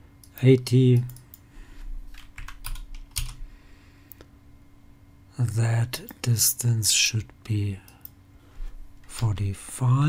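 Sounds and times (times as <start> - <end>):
keyboard keys tapping: 2.1 - 3.4.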